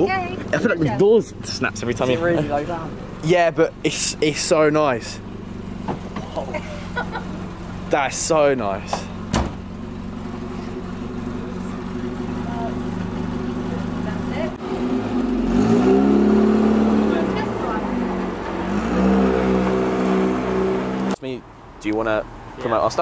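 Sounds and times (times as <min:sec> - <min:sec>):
car engine idling and revving: 0:00.0 - 0:23.0
car door shutting: 0:05.8 - 0:06.4, 0:08.9 - 0:09.7.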